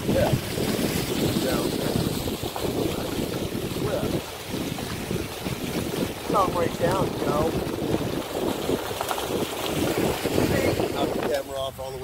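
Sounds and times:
car rumbling on unpaved road: 0.0s - 12.0s
wind buffeting microphone: 0.0s - 12.0s.

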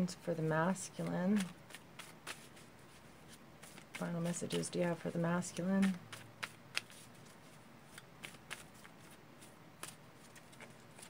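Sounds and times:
cards shuffled by hand: 0.7s - 11.0s.

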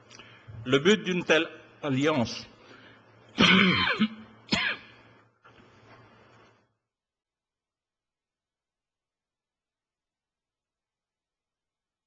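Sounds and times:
man clearing his throat: 3.4s - 5.0s.

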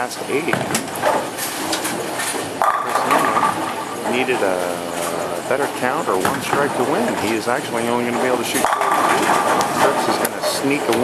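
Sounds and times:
bowling pins and balls clattering: 0.0s - 11.0s.

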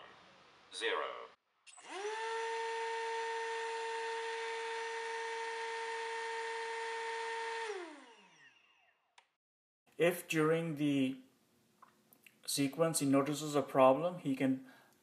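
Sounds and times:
electric motor whining: 1.7s - 9.2s.

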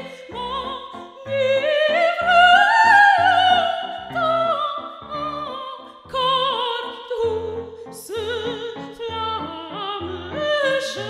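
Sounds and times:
piano repeated chords: 0.0s - 11.0s
soprano singing operatic line: 0.0s - 11.0s.

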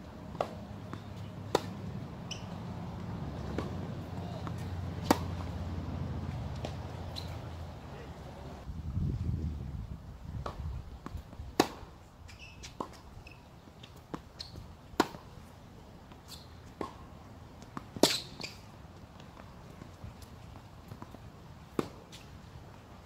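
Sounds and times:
racquet hitting tennis ball: 0.3s - 7.5s, 11.6s - 11.9s
tennis ball bouncing: 0.3s - 8.4s, 10.4s - 15.4s, 16.1s - 22.3s.

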